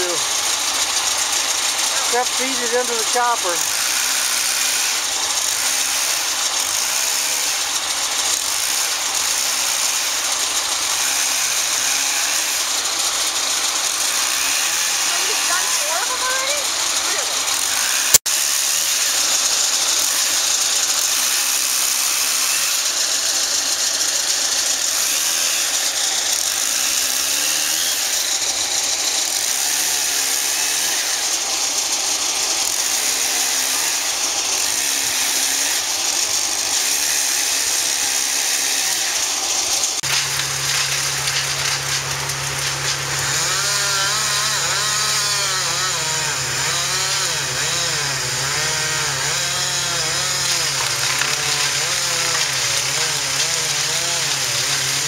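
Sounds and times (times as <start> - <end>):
engine running steadily: 0.0 - 18.2, 39.2 - 48.4.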